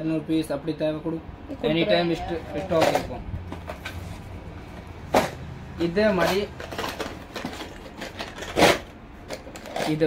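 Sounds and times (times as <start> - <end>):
plastic box scraping: 6.2 - 10.0.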